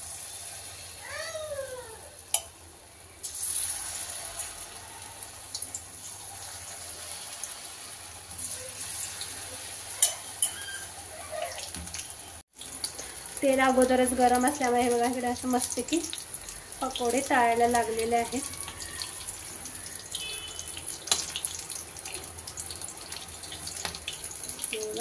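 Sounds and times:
batter sizzling in hot oil: 0.0 - 25.0
spoon clicking against pan: 2.3 - 2.6, 10.0 - 10.6.

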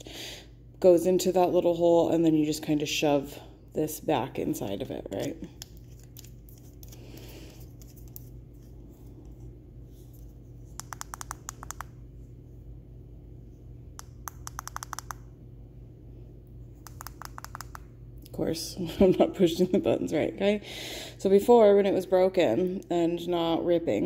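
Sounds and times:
low steady hum: 0.0 - 24.0.

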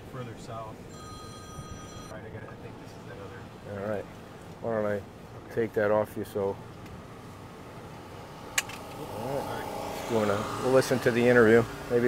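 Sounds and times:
truck cab background noise: 0.0 - 12.0
sharp click: 8.6 - 9.0.

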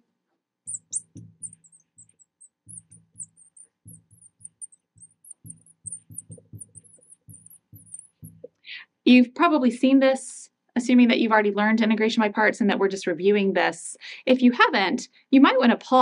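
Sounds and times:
marker squeaking on glass: 0.7 - 8.5
marker tip knocking on glass: 0.7 - 8.5.

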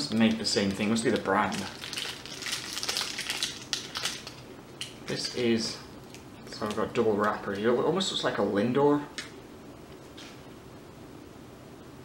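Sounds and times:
candy wrapper crinkling: 0.1 - 5.5.

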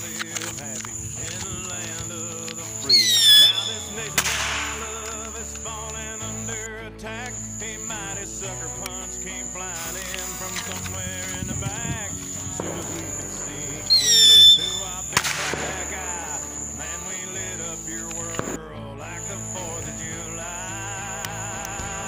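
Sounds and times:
country song playing: 0.0 - 22.0
firework rocket whistling: 2.6 - 5.0, 12.3 - 16.7
firework bang: 12.5 - 16.2.

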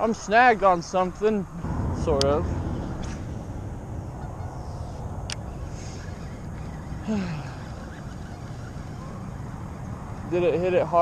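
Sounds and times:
steady low outdoor noise: 0.0 - 11.0.

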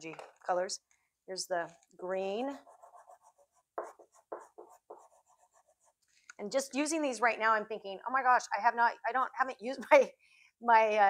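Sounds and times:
graphite scratching on paper: 2.5 - 6.1.

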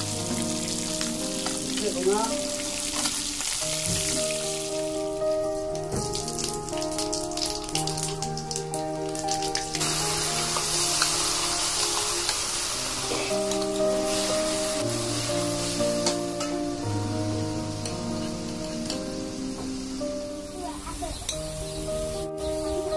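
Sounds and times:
background music: 0.0 - 22.9
oil sizzling in a pan: 0.0 - 22.9.

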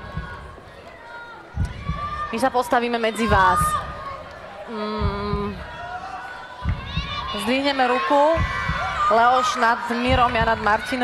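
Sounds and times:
low thump: 6.6 - 7.3.

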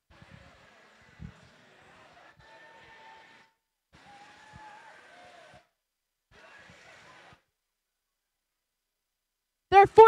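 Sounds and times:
murmur of crowd and robots: 0.1 - 5.1, 6.3 - 7.4.

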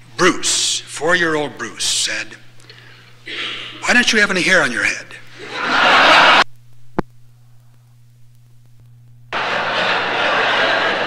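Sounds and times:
large audience laughing: 5.3 - 6.4, 9.4 - 11.0.

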